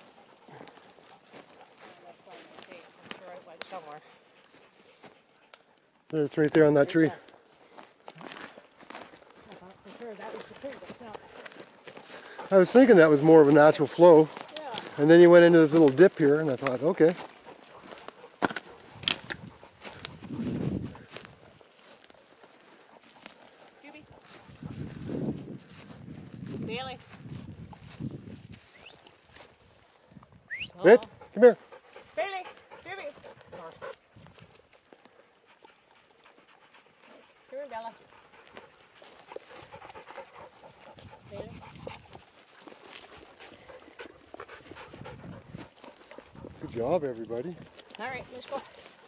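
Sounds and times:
brushing and trampling: 0:00.0 - 0:05.5, 0:07.8 - 0:30.0, 0:36.6 - 0:49.0
dogs panting: 0:00.0 - 0:30.1, 0:30.8 - 0:49.0
footsteps through dry undergrowth: 0:00.0 - 0:49.0
twigs snapping: 0:14.2 - 0:15.1, 0:15.7 - 0:20.2.

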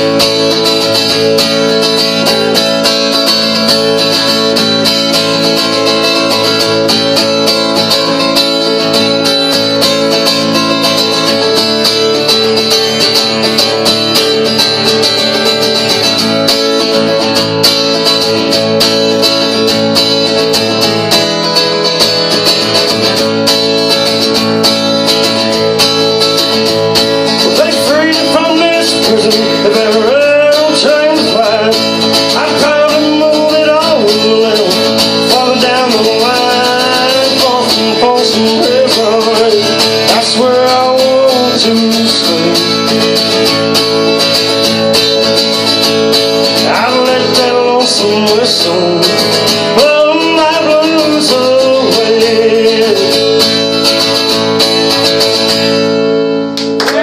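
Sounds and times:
acoustic guitar strumming: 0:00.0 - 0:57.0
man singing: 0:27.3 - 0:43.4, 0:46.4 - 0:53.8.

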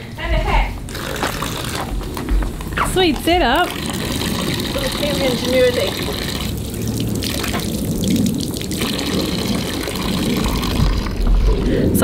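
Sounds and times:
water splashing from garden hose: 0:02.6 - 0:12.0.

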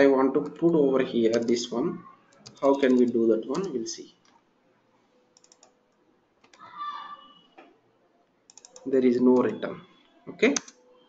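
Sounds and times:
computer keyboard typing: 0:01.3 - 0:01.7, 0:02.3 - 0:03.9, 0:05.4 - 0:05.8, 0:08.5 - 0:09.7, 0:10.5 - 0:10.8.

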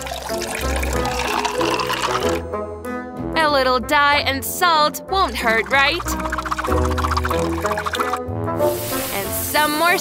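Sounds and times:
background music: 0:00.0 - 0:10.0
water running into plastic tub: 0:05.4 - 0:08.2.

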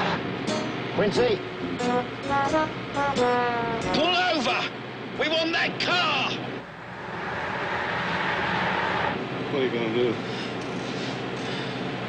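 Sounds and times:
cars speeding: 0:06.6 - 0:09.8.

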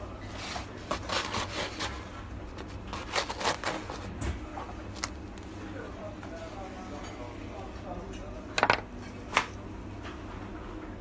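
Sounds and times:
knife sawing through crust: 0:00.2 - 0:04.1.

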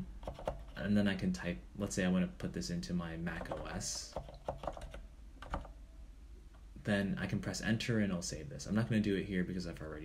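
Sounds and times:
typing on computer keyboard: 0:00.2 - 0:00.8, 0:03.4 - 0:05.7.

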